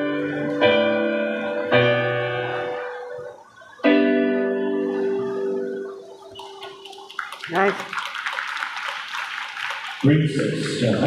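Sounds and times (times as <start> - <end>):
electronic keyboard chord: 0.0 - 6.8
audience applauding: 5.9 - 11.0.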